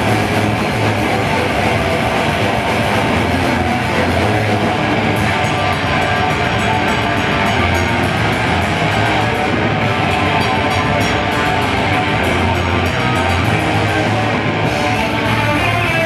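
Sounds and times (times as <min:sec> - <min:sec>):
fast drum and cymbal hits: 0:00.0 - 0:16.0
metal band playing: 0:00.0 - 0:16.0.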